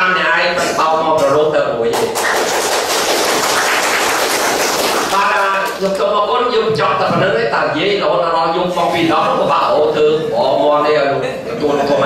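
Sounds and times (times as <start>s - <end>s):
audience applauding: 2.0s - 6.0s.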